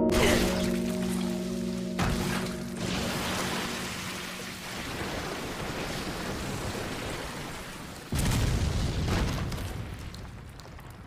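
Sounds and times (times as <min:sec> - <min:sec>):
rain pattering on ground: 0:03.0 - 0:11.0.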